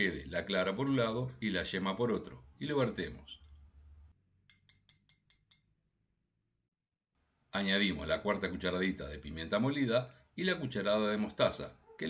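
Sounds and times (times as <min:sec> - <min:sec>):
fork clinking on glass dish: 0:04.5 - 0:05.6.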